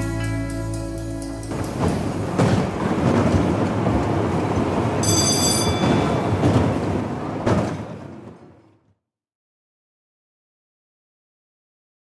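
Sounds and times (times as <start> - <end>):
fairground ride rumbling clatter: 1.0 - 8.8
high ringing tone: 5.0 - 6.4.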